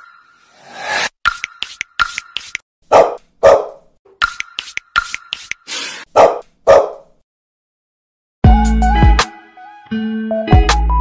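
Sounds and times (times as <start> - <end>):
puppy barking: 2.9 - 3.9, 6.1 - 7.1.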